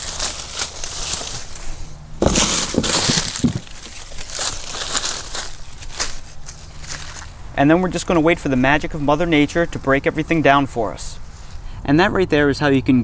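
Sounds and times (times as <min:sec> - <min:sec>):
dry leaves rustling and crackling: 0:00.0 - 0:07.4.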